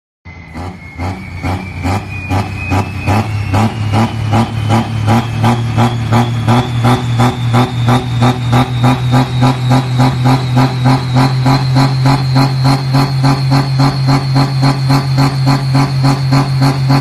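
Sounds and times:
diesel tractor engine droning: 0.3 - 17.0
high whistle rising in pitch: 0.3 - 17.0.

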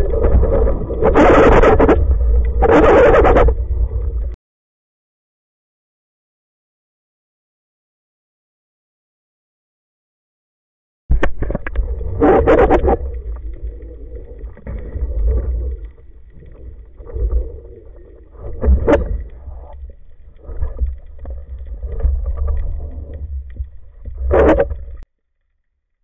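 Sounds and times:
muffled underwater rumble: 0.0 - 4.4, 11.1 - 26.0.

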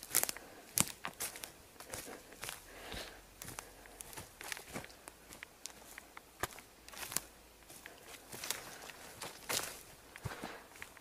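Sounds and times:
footsteps on leaf litter: 0.0 - 11.0.

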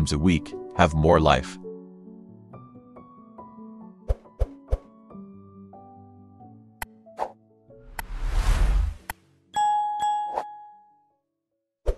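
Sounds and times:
soft background music: 0.0 - 8.1
bell chime: 9.6 - 11.0.

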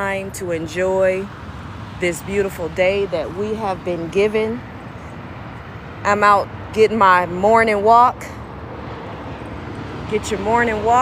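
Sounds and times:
highway traffic rumble: 0.0 - 11.0.

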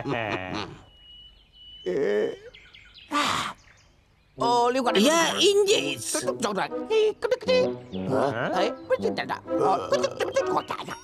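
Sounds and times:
bird whistle and chirps: 0.8 - 3.9.

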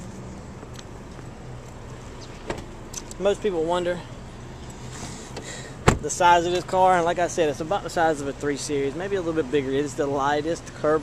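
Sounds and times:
low outdoor background noise: 0.0 - 11.0.

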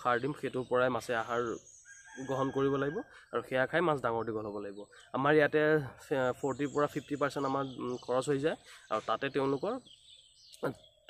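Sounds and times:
man talking: 0.0 - 1.6, 2.2 - 9.9, 10.6 - 10.8
rooster crowing: 1.9 - 3.2.

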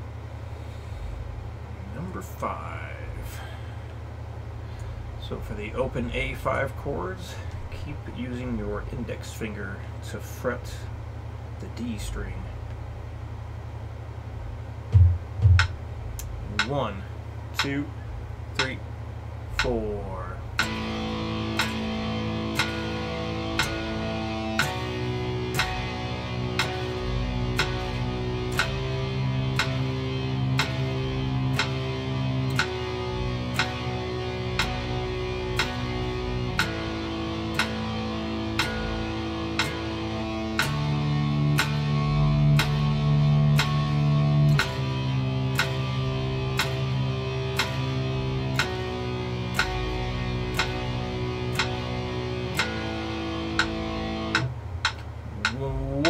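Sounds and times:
ticking metronome click: 15.5 - 16.8, 17.5 - 17.9, 18.6 - 18.8, 19.5 - 55.6
electric guitar power chords: 19.5 - 56.0.

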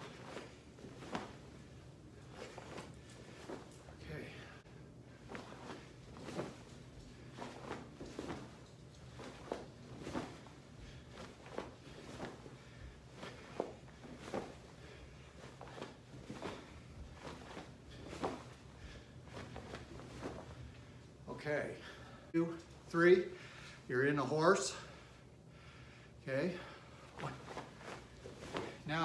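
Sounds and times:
swishes of arms and uniform: 0.0 - 21.3, 27.0 - 29.0.

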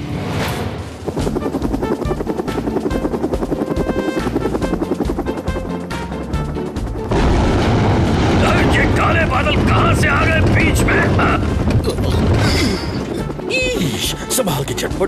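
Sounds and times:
background music: 0.0 - 15.0
helicopter rushing noise: 0.0 - 15.0
helicopter rotor chopping: 0.9 - 15.0.

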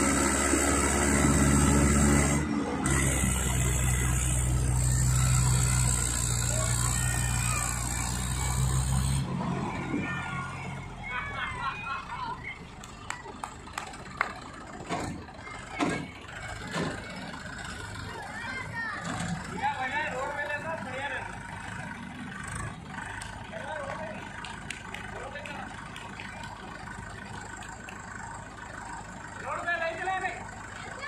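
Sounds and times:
tractor engine idling: 0.0 - 31.0
people talking: 2.8 - 27.4, 29.3 - 31.0.

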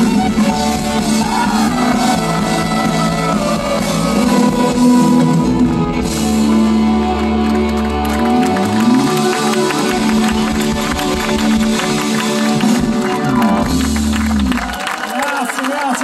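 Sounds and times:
live rock band playing: 0.0 - 14.8.

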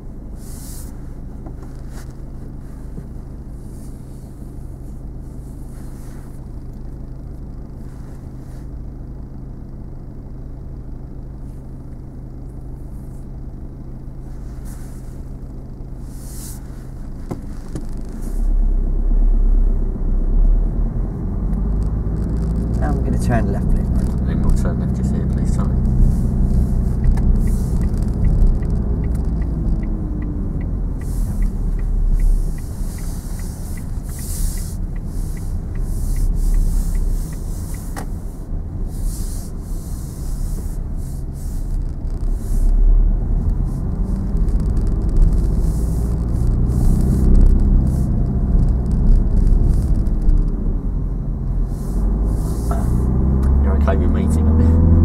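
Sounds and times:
car engine idling and accelerating: 0.0 - 55.0
low road rumble: 0.0 - 55.0.

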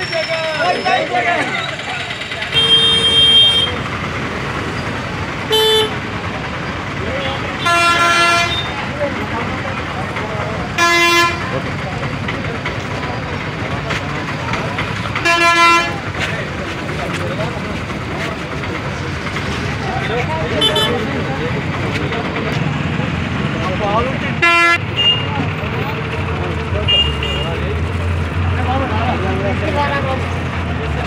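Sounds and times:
crowd voices: 0.0 - 31.0
traffic din: 0.0 - 31.0
vehicle horns tooting: 2.4 - 3.9, 5.5 - 6.0, 7.3 - 8.8, 10.8 - 11.6, 15.2 - 16.0, 20.5 - 21.1, 24.4 - 25.4, 26.8 - 27.6.

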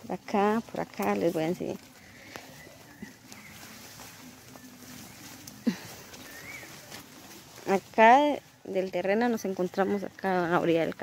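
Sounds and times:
footsteps through wet plants: 0.0 - 11.0.

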